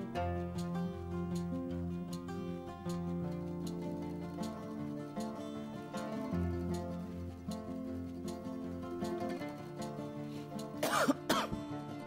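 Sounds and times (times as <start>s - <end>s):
instrumental background music: 0.0s - 12.0s
person coughing: 10.8s - 11.6s.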